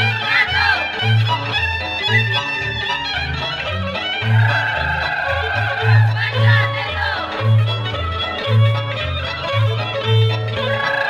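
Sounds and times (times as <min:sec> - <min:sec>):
folk dance music: 0:00.0 - 0:11.0.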